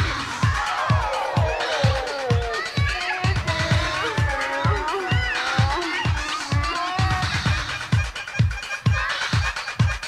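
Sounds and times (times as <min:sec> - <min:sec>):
kick drum: 0:00.0 - 0:10.0.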